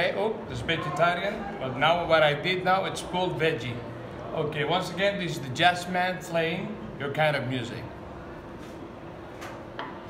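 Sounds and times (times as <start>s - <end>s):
kitchen room noise: 0.0s - 10.0s.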